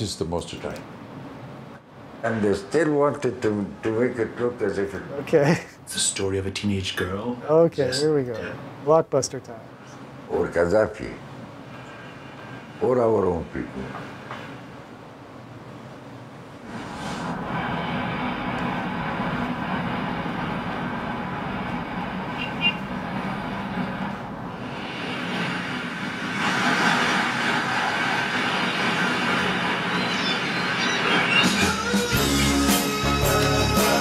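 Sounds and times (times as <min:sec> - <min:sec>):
buses and cars passing: 0:16.5 - 0:32.5.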